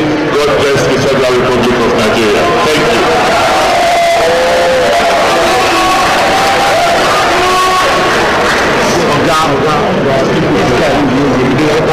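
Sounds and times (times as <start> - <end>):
crowd cheering and calling out: 0.0 - 11.6.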